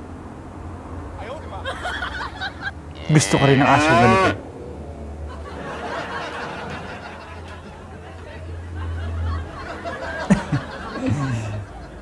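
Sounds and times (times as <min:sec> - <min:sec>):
loud drawn-out vocal call: 0:02.9 - 0:04.4.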